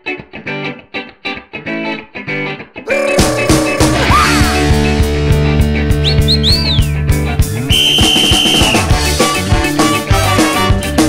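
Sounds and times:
high sliding whistle-like notes: 0:02.9 - 0:05.0, 0:05.9 - 0:08.9
steady beat: 0:02.9 - 0:09.2
held bass notes: 0:02.9 - 0:10.4.

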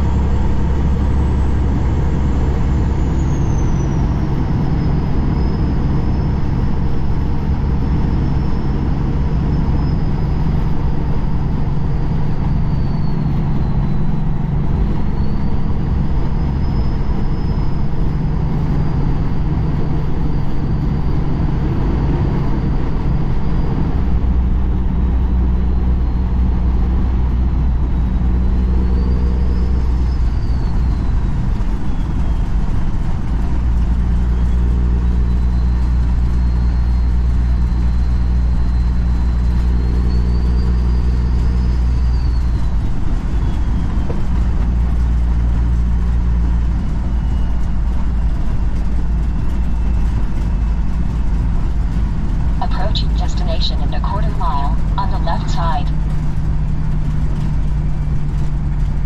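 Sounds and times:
road noise: 0:00.0 - 0:59.0
truck diesel engine running: 0:00.0 - 0:59.0.

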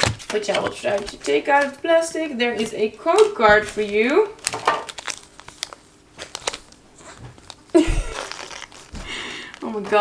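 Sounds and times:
foil packs crinkling: 0:00.0 - 0:10.0.

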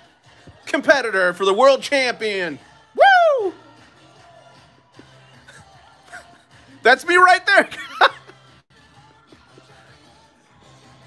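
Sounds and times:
faint upbeat music: 0:00.0 - 0:11.0.

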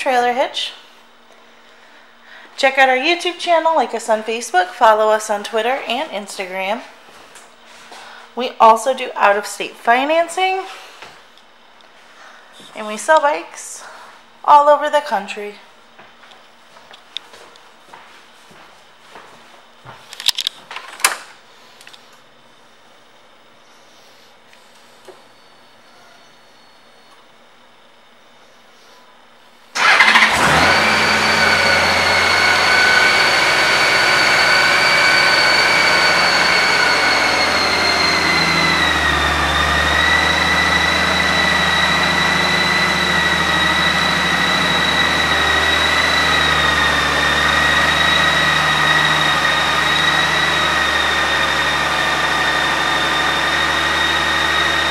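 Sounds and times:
motorcycle engine starting and idling: 0:29.8 - 0:54.9.

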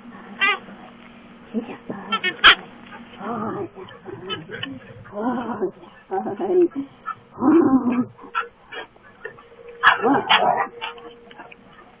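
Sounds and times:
dog barking: 0:02.1 - 0:03.0, 0:08.0 - 0:12.0.

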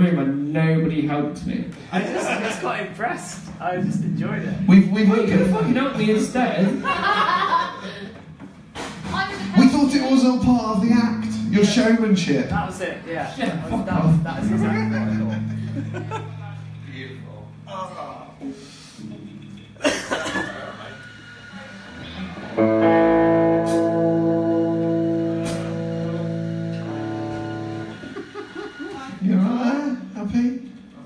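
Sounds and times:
electric guitar chords: 0:03.6 - 0:06.5, 0:09.4 - 0:12.6, 0:13.8 - 0:29.2.

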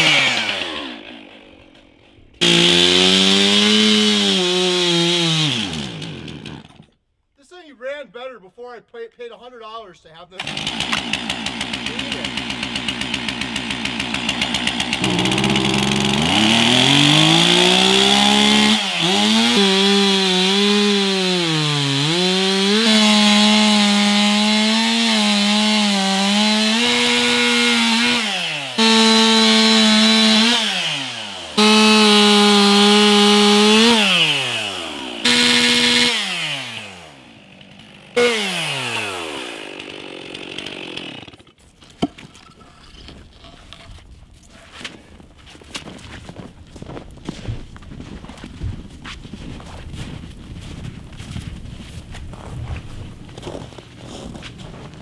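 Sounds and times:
chainsaw cutting log: 0:00.0 - 0:07.0, 0:10.4 - 0:43.8.

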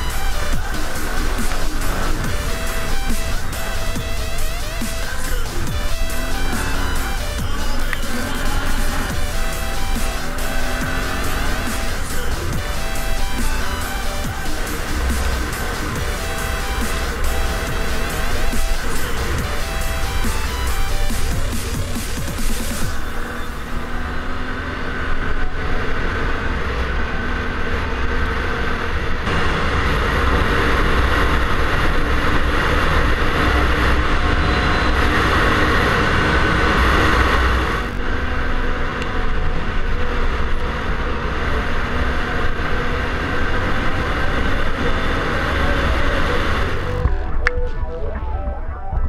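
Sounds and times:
atv engine running: 0:00.0 - 0:47.6.

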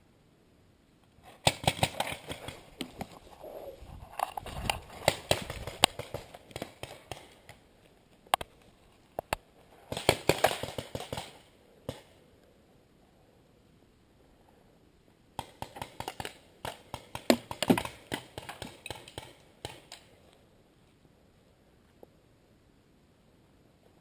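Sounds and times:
paintball markers firing: 0:15.4 - 0:20.0.

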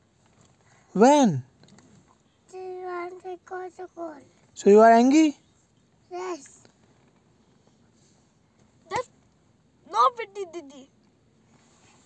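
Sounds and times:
car cabin background: 0:06.1 - 0:12.0.

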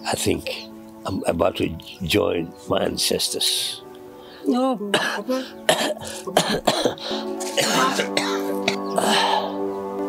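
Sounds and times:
music of sustained tones: 0:00.0 - 0:10.0
man coughing: 0:04.9 - 0:08.9.

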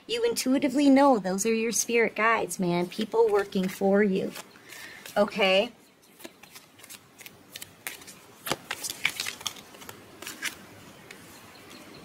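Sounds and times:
cards being shuffled: 0:02.8 - 0:05.3, 0:06.1 - 0:11.3.

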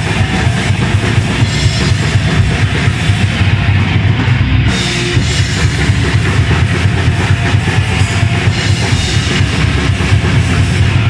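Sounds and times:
heavy metal band playing live: 0:00.0 - 0:11.0.

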